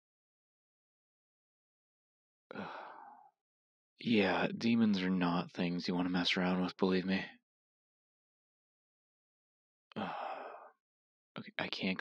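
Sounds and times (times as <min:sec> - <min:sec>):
man sighing: 0:02.5 - 0:03.1, 0:09.9 - 0:10.7.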